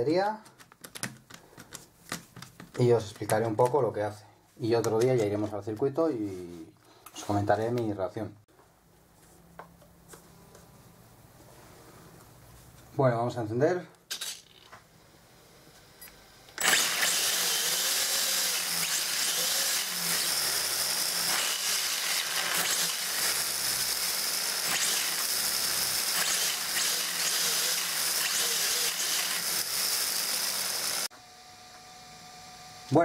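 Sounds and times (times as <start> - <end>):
toy car electric motor whirring: 14.1 - 14.7, 16.6 - 31.1.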